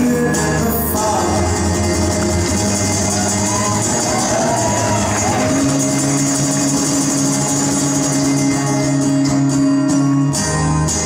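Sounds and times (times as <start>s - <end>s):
acoustic guitar chords: 0.0s - 11.0s.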